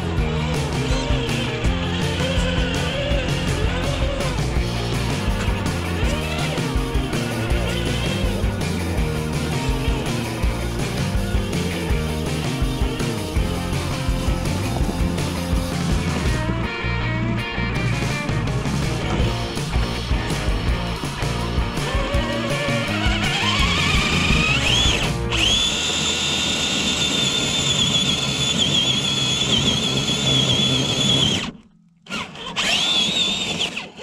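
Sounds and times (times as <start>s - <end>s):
rock music with a beat: 0.0s - 25.6s
electric motor high-pitched whine: 21.8s - 34.0s.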